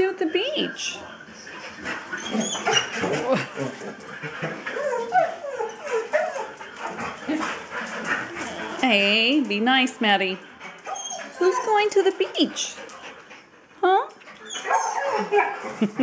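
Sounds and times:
dogs whining and crying: 1.8s - 9.0s, 10.7s - 12.8s, 14.3s - 16.0s.

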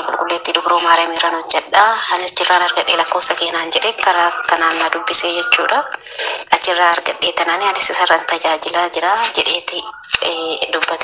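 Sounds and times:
person talking on phone playback: 0.0s - 11.0s.

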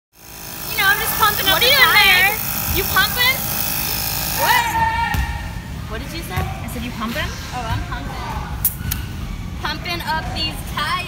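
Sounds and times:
tyre inflator motor running: 0.1s - 4.7s.

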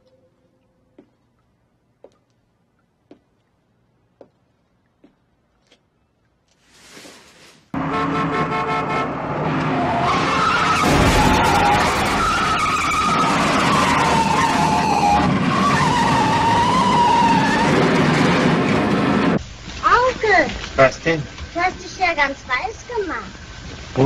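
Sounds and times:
car engines revving: 7.8s - 19.4s.

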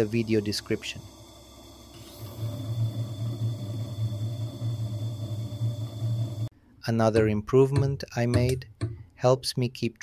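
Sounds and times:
gemstone grinding on spinning lap: 0.0s - 6.5s
motor hum: 0.0s - 6.5s.

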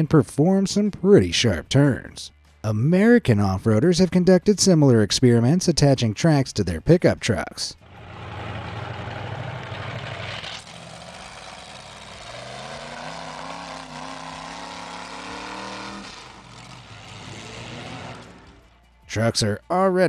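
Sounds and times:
pickup truck engine revving: 7.8s - 18.8s.

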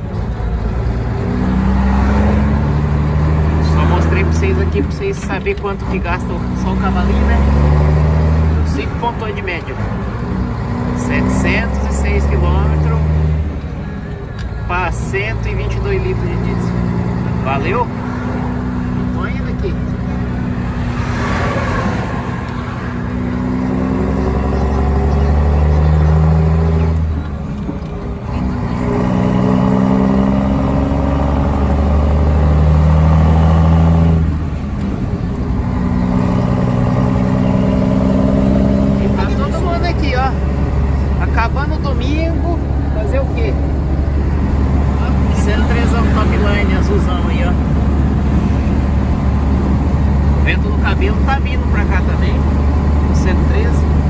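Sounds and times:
diesel truck engine accelerating: 0.0s - 54.0s.

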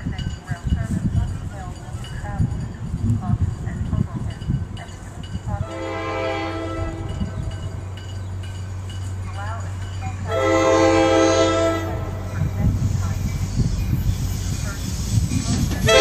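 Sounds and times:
train horn blasts: 5.6s - 7.6s, 10.3s - 12.7s, 15.8s - 16.0s.

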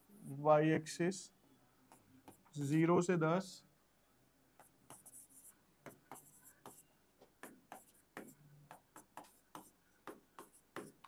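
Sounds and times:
stylus tapping on a screen: 5.8s - 11.0s.

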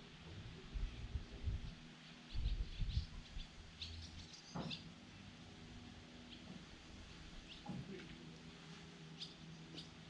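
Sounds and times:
small birds chirping: 1.4s - 5.4s, 6.2s - 6.6s, 7.2s - 10.0s.

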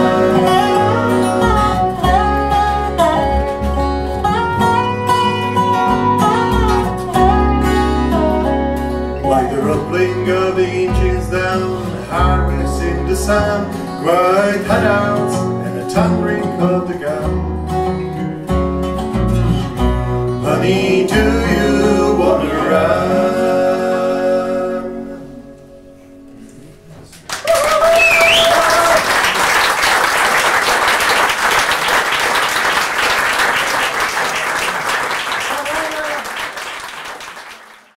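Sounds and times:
bluegrass band playing: 0.0s - 26.9s
audience applause: 27.2s - 38.0s
person whooping: 27.3s - 29.2s.

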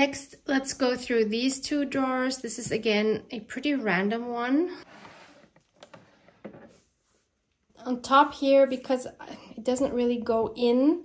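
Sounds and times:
plastic bin scraping: 4.8s - 7.0s.

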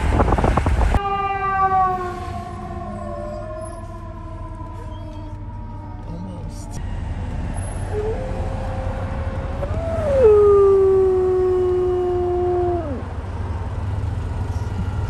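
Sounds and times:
car wind and road rumble: 0.0s - 15.0s
dog howling: 1.0s - 6.8s, 7.9s - 13.1s.

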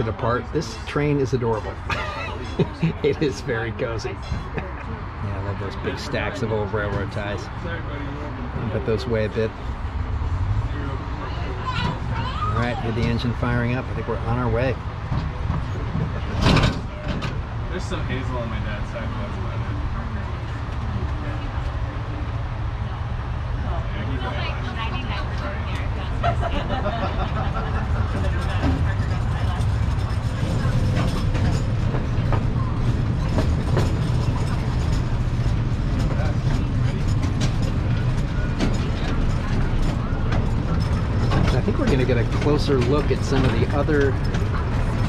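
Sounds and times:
train wheels rumbling: 5.3s - 45.0s.

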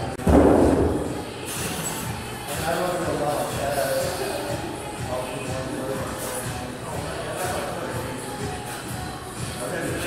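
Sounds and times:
loud heavy thud: 0.2s - 1.2s.

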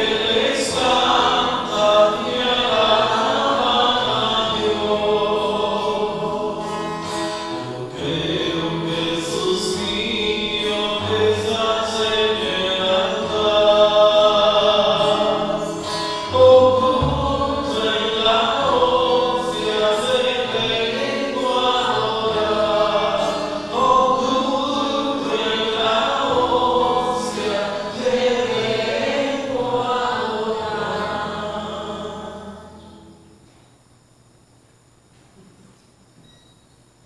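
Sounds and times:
choir singing sacred chant: 0.0s - 33.0s.

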